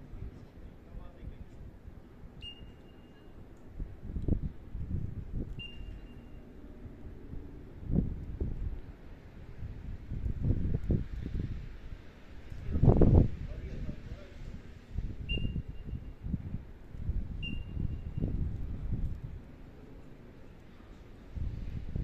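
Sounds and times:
short high whistle tones: 0:02.4 - 0:03.4, 0:05.6 - 0:06.4
wind buffeting microphone: 0:03.7 - 0:22.0.

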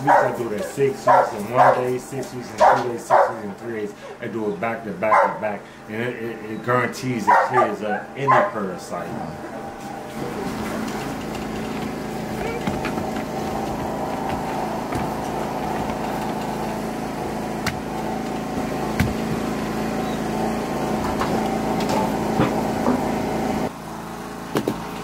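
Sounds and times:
mechanical motor hum: 0:00.0 - 0:25.0.

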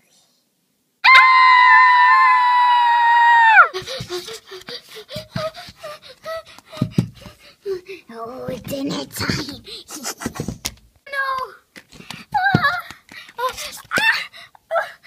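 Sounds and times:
loud high-pitched scream: 0:01.0 - 0:03.7.

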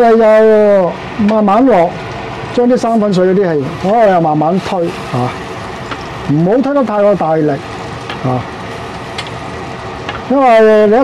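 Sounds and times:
sauce simmering in wok: 0:00.8 - 0:02.6, 0:03.6 - 0:10.3.

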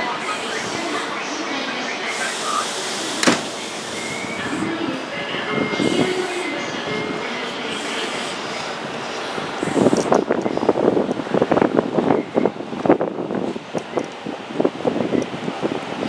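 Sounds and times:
distant train: 0:00.0 - 0:16.0
wind buffeting microphone: 0:08.7 - 0:16.0.

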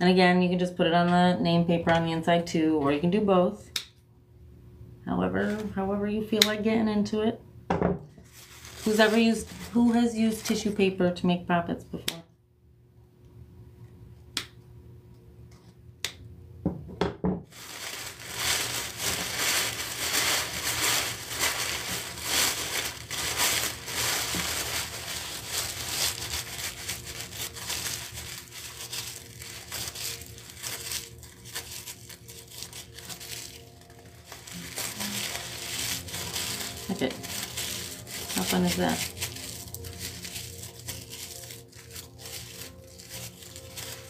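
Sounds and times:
tissue paper crinkling: 0:08.2 - 0:10.8, 0:17.5 - 0:44.0.

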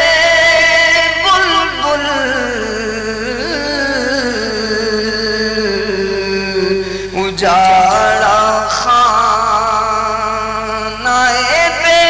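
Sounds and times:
man singing devotional poem: 0:00.0 - 0:12.0.

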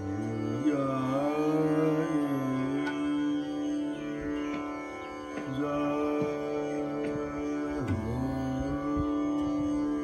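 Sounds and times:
man singing classical vocal: 0:00.0 - 0:04.2, 0:05.4 - 0:10.0
tanpura drone: 0:00.0 - 0:10.0.

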